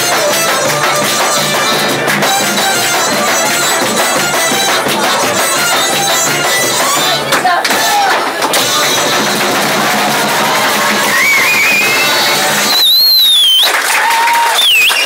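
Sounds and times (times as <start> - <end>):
audience applauding and cheering: 7.9 - 15.0
shrill whistles: 11.0 - 15.0.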